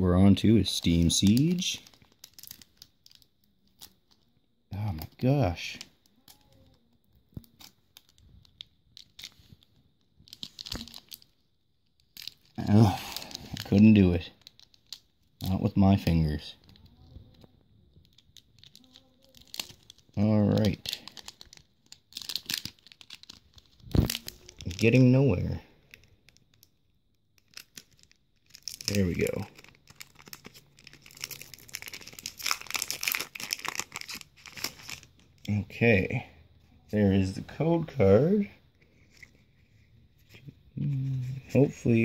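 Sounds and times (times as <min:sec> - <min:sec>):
foil wrapper crinkling: 0:00.8 - 0:04.3, 0:06.0 - 0:15.6, 0:16.6 - 0:35.4.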